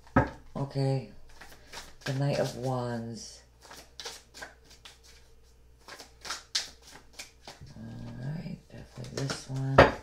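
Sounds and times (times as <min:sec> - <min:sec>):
cards being shuffled: 0:01.3 - 0:02.8, 0:03.6 - 0:08.2, 0:08.8 - 0:09.8.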